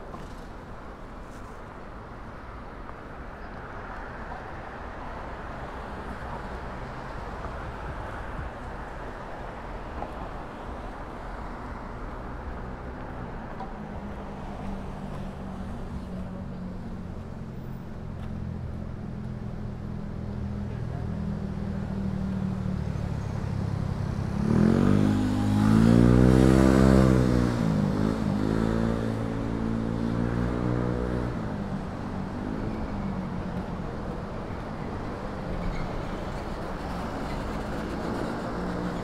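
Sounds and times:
vehicle engine idling and revving: 0:16.6 - 0:35.0.

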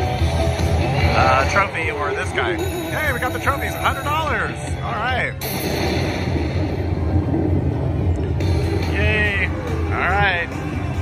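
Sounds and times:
noisy rumble and crackle: 0:00.0 - 0:11.0
slot machine low hum: 0:00.0 - 0:11.0.

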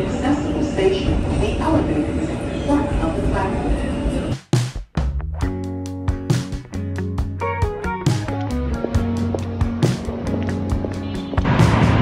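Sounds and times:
woman speaking: 0:00.0 - 0:04.1
city street noise: 0:00.0 - 0:04.5, 0:06.4 - 0:12.0
music with steady beat: 0:04.3 - 0:12.0.

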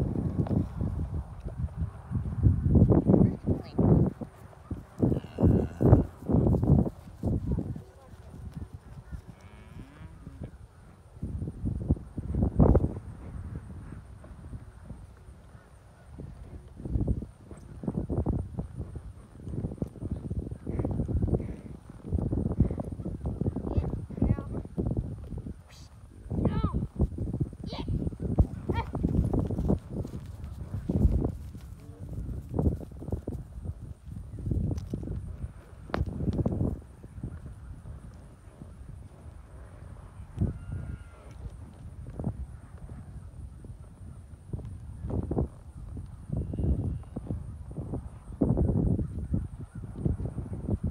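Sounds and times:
hooves clip-clopping: 0:00.0 - 0:09.5, 0:11.9 - 0:50.8
cattle lowing: 0:05.0 - 0:06.4.

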